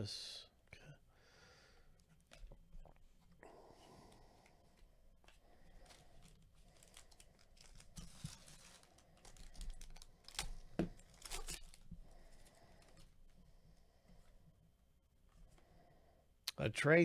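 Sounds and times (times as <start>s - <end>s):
wrapper tearing and crinkling: 6.2s - 11.8s.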